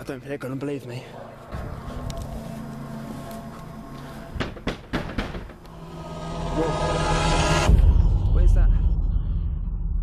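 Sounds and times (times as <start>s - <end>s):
steady low drone: 0.9s - 10.0s
sharp knocks: 4.4s - 5.6s.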